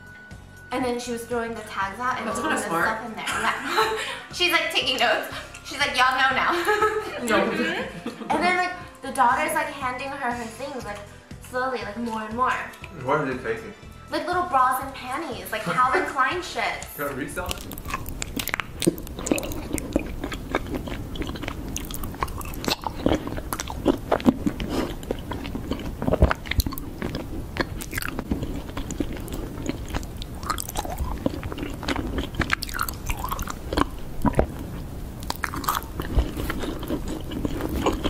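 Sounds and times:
mouth clicks: 17.4 - 38.0
person chewing honeycomb: 17.4 - 38.0.

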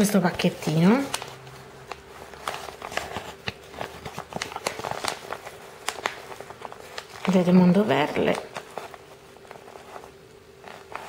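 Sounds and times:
envelope crinkling: 0.0 - 11.0.

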